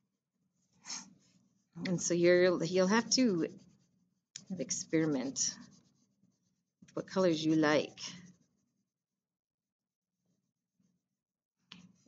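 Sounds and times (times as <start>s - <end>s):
crayon scratching on paper: 0.6s - 9.0s.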